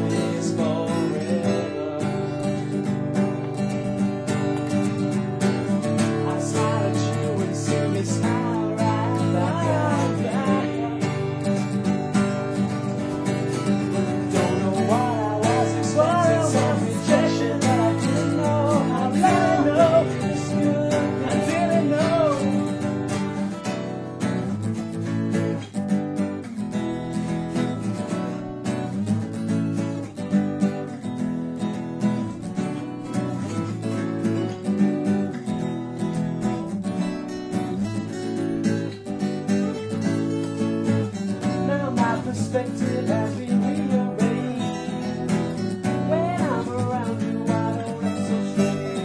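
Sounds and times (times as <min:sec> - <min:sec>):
person singing: 0:00.0 - 0:03.6, 0:05.6 - 0:23.5, 0:40.8 - 0:49.0
acoustic guitars strumming: 0:00.0 - 0:49.0.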